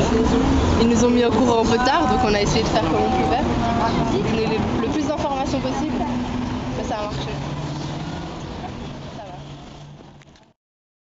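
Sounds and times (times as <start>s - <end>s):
people talking: 0.0s - 7.4s, 8.5s - 9.5s
street traffic hum: 0.0s - 10.6s.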